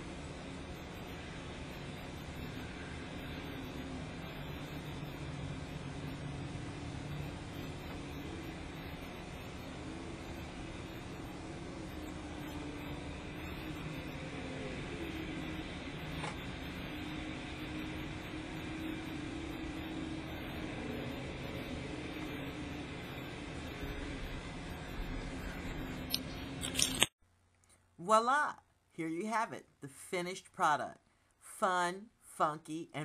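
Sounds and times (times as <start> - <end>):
faint low wavering hum: 0.0 - 27.0.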